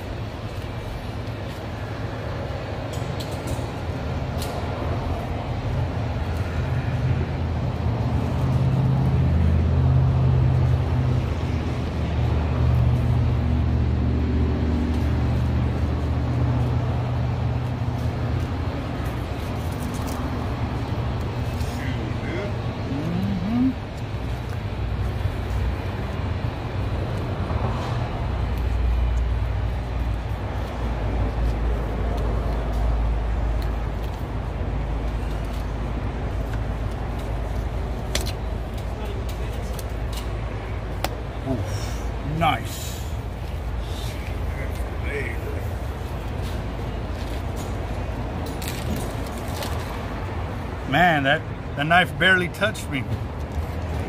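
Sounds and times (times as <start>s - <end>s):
road traffic noise: 0.0s - 54.0s
vehicle engine humming: 0.0s - 54.0s.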